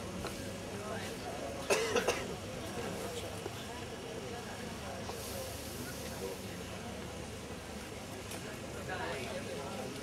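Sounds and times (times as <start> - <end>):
crowd murmur: 0.0 - 10.0
person coughing: 1.7 - 2.2.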